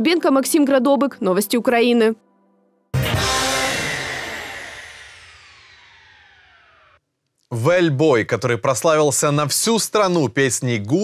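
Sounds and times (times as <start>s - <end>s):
musical sting with sliding tones: 3.0s - 7.0s.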